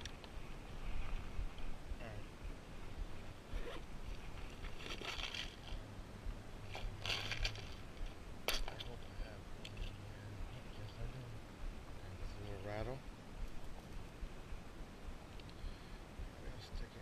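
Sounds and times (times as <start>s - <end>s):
fishing tackle rustling and scraping: 0.0s - 1.8s, 2.8s - 5.9s, 6.6s - 11.1s.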